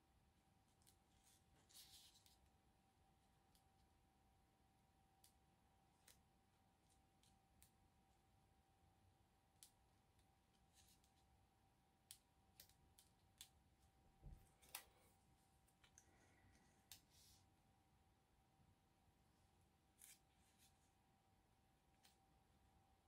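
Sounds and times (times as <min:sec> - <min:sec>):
faint steady hum: 0:00.0 - 0:23.0.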